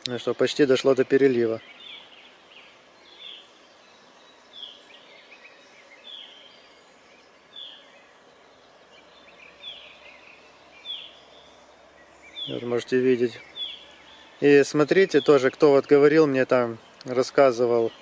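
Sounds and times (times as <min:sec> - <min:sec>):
faint twittering: 0:00.0 - 0:18.0.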